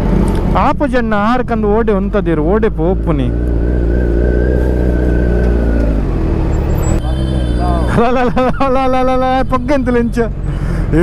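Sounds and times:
engines idling: 0:00.0 - 0:11.0.

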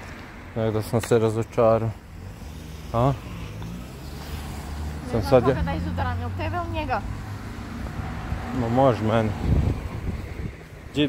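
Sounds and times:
car engine rumbling: 0:00.0 - 0:11.0.

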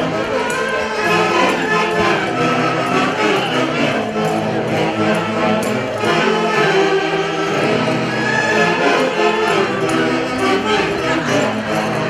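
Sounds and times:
band playing dance music: 0:00.0 - 0:12.0.

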